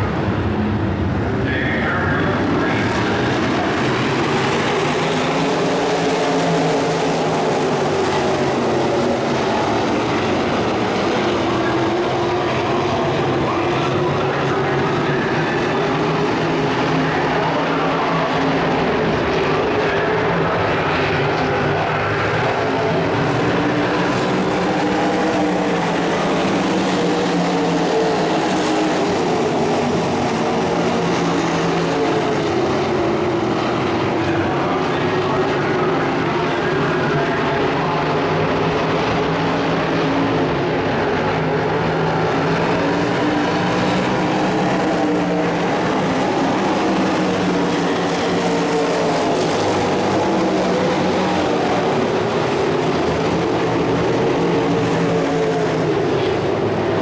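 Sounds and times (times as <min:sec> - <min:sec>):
racing car engines: 0:00.0 - 0:57.0.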